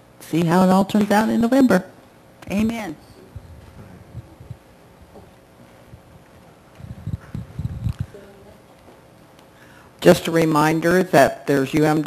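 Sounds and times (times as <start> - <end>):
low dull thumps: 3.3 - 8.2.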